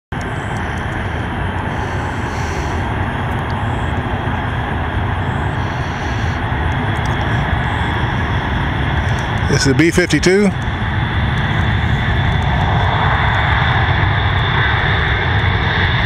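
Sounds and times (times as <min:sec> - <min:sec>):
jet engines roaring at takeoff: 0:00.1 - 0:16.0.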